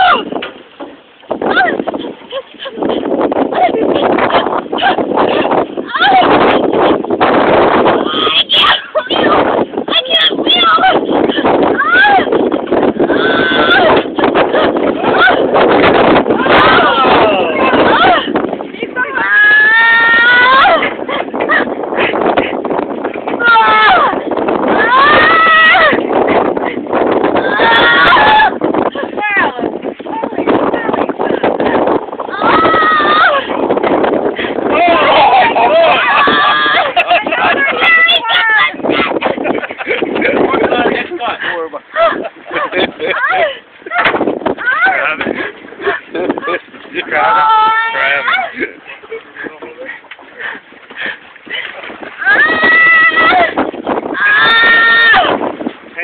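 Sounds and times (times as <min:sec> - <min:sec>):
woman squealing cries: 0:27.4 - 0:28.5
woman giggling and squealing: 0:35.1 - 0:38.0, 0:41.9 - 0:44.1.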